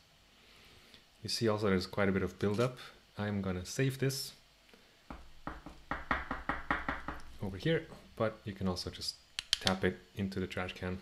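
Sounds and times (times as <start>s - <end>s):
sandpaper pad tapping on surface: 5.1s - 7.3s.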